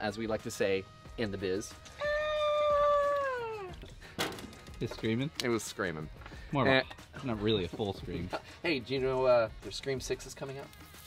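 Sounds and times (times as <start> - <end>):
person mock screaming: 2.0 - 3.8.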